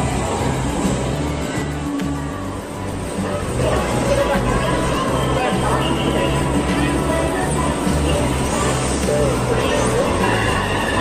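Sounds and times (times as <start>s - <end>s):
background voices: 0.0s - 11.0s
electronic arcade game music: 0.0s - 11.0s.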